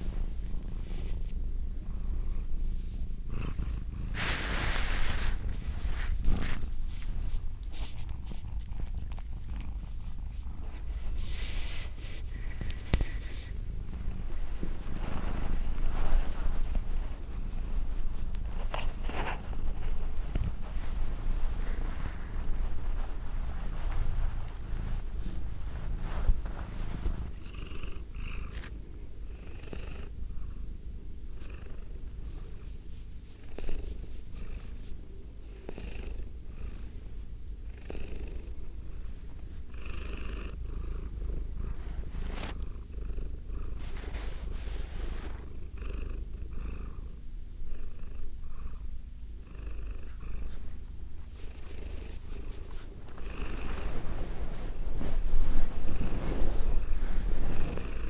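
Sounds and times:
cat purring: 0.0 - 58.0.

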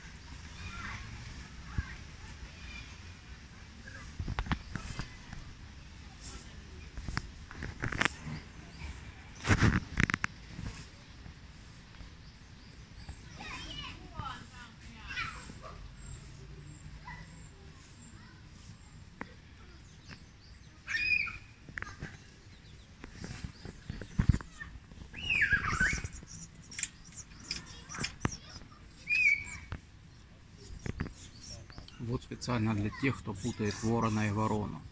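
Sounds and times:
chatter of people and children: 0.0 - 34.9.

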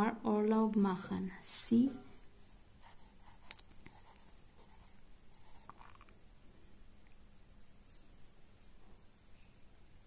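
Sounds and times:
pencil scratching on paper: 2.8 - 5.8.

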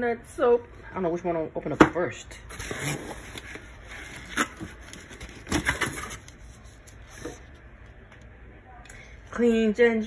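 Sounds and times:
paper rustling: 2.5 - 7.6.

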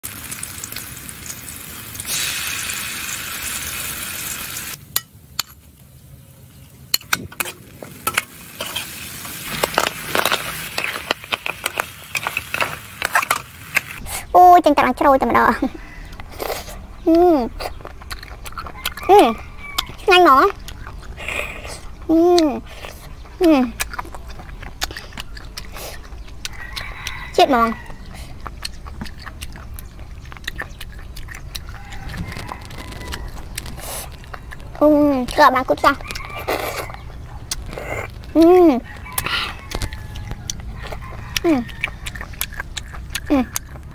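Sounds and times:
garlic sizzling in hot oil: 0.0 - 4.8, 7.8 - 14.0
wet sucking noise: 31.6 - 34.9.

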